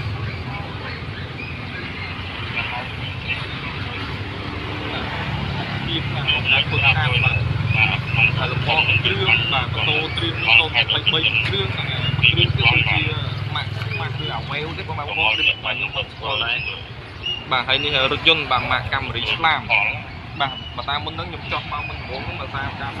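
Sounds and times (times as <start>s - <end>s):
people talking: 0.0s - 1.2s, 2.4s - 4.3s, 4.9s - 16.8s, 17.5s - 23.0s
steady low hum: 0.0s - 23.0s.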